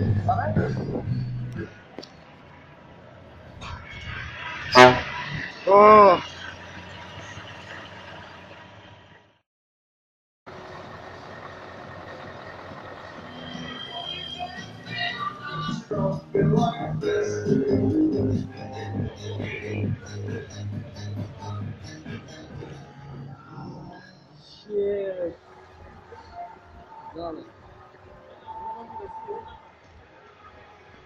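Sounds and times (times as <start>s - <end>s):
low engine rumble: 0.0s - 4.0s, 6.2s - 9.4s, 10.5s - 24.1s
truck air horn: 4.6s - 5.5s.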